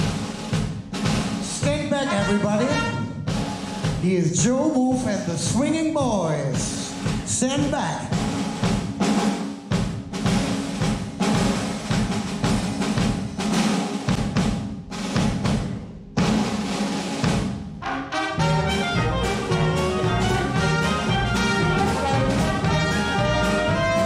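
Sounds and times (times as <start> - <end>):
drum kit rolls: 0.0 - 24.0
jazz horn section: 1.8 - 3.8, 17.8 - 24.0.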